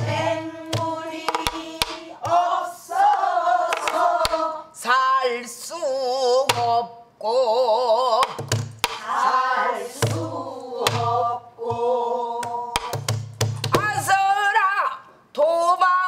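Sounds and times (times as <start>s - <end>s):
stick strikes on drum: 0.0s - 2.4s.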